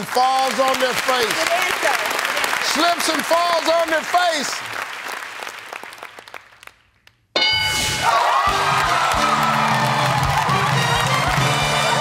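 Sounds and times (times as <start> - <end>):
audience applause: 0.0 - 6.9, 8.1 - 12.0.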